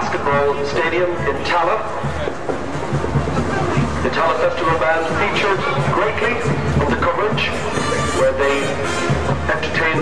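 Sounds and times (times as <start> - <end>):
indistinct talking: 0.0 - 10.0
parade music: 0.0 - 10.0.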